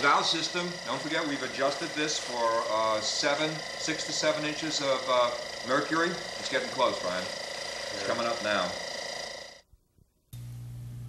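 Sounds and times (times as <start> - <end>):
hum with high whine: 0.0 - 9.7, 10.3 - 11.0
low steady hum: 10.3 - 11.0.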